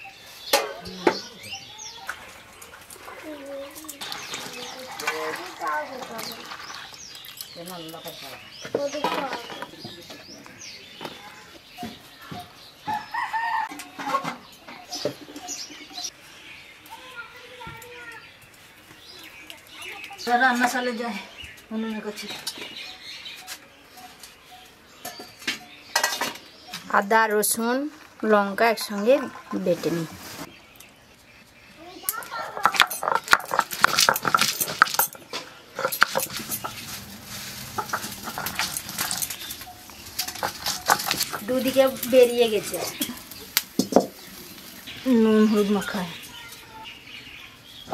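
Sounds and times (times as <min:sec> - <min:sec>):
chickens calling: 0:00.0 - 0:27.8, 0:28.6 - 0:47.9
garlic cracking under stone roller: 0:32.1 - 0:46.3.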